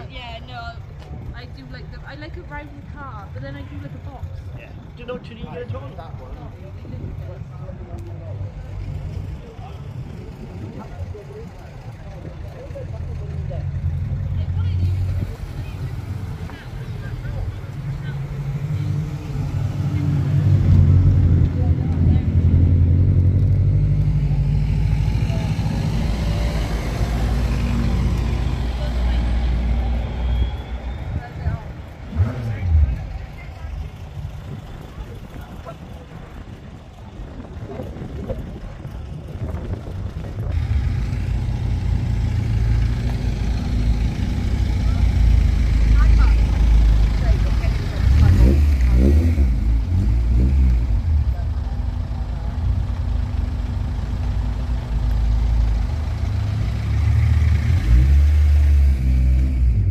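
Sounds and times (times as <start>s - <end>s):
car engine running at low revs: 2.5s - 59.9s.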